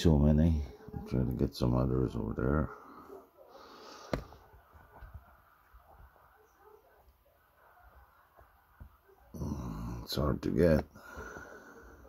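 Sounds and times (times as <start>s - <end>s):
man speaking: 0.0s - 2.8s, 9.4s - 10.9s.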